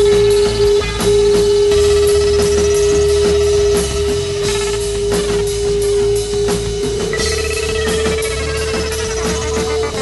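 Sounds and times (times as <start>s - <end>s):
psychedelic rock band jamming: 0.0s - 10.0s
steady drum beat: 0.0s - 10.0s.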